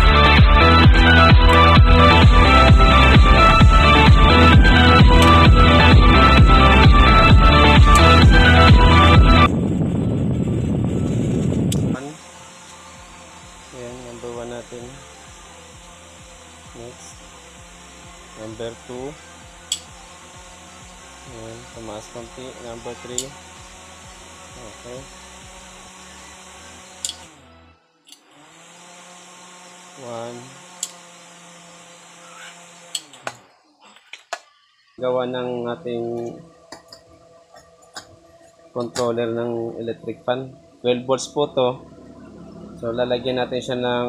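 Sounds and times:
electric fan running: 0:00.0 - 0:33.5, 0:35.0 - 0:44.0
sharp clicks: 0:27.0 - 0:27.3.

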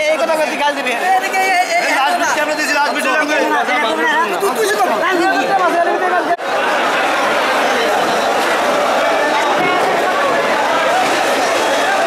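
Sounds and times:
chatter of many voices: 0:00.0 - 0:12.0.

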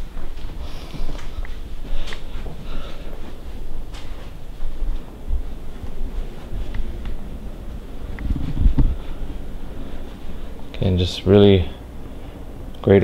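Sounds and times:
handling and wind rumble on microphone: 0:00.0 - 0:11.6
faint footsteps: 0:00.0 - 0:12.7.

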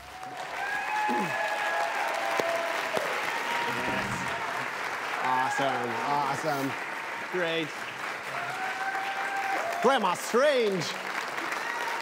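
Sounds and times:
audience applauding: 0:00.0 - 0:12.0
cheers: 0:00.0 - 0:12.0.

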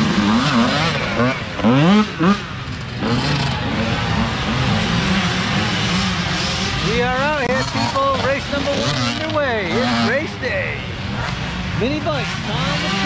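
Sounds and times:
dirt bike engine passing: 0:00.0 - 0:13.0.

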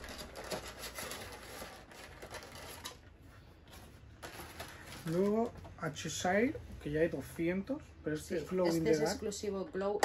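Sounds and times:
cardboard and plastic rustling: 0:00.0 - 0:06.6.

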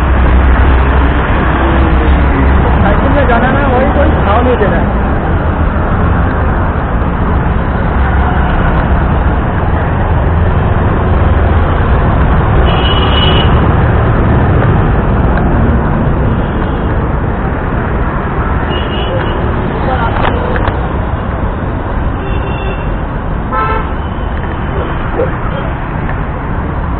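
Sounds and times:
heavy road traffic rumble: 0:00.0 - 0:26.9.

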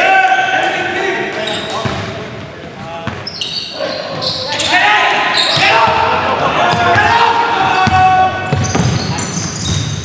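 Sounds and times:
players' voices: 0:00.0 - 0:09.9.

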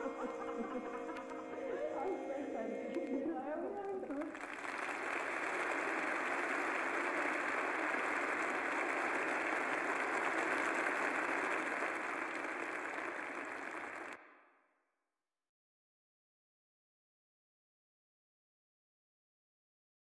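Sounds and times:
babble of many voices: 0:00.0 - 0:04.4.

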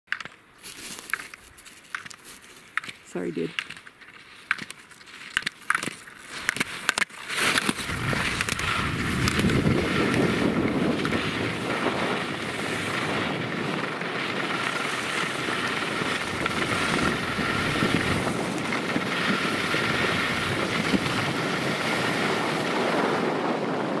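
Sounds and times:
ski edges scraping snow: 0:00.6 - 0:23.5
wind on microphone: 0:07.7 - 0:24.0.

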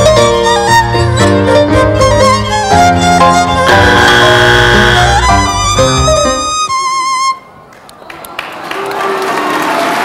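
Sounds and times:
audience applause: 0:07.7 - 0:10.0.

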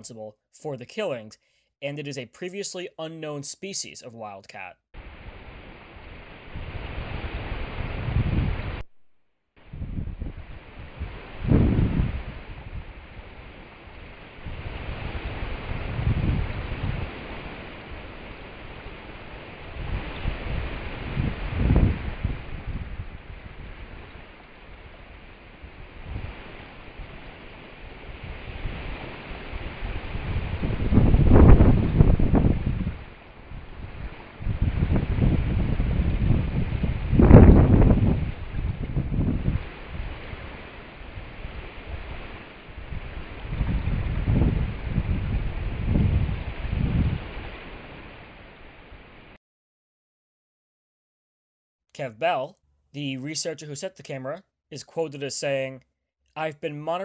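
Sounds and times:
wind buffeting microphone: 0:05.0 - 0:08.8, 0:09.6 - 0:49.2.

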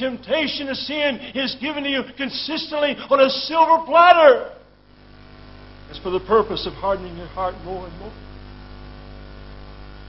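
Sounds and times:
electrical mains hum: 0:00.0 - 0:10.0.

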